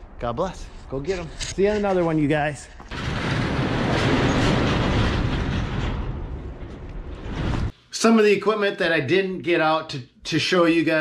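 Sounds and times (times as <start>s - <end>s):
shop door rattling down: 2.9s - 7.7s.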